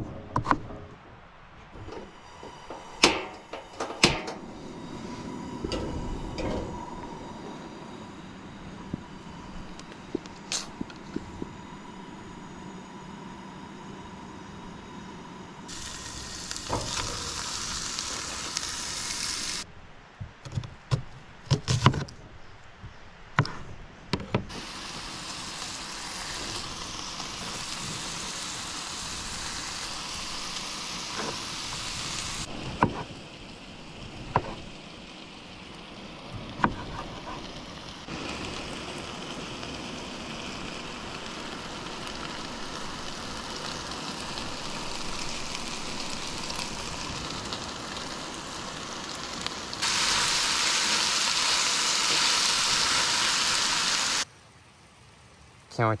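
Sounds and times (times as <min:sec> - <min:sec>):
food sizzling in a skillet: 0:14.9 - 0:19.6, 0:24.5 - 0:54.3.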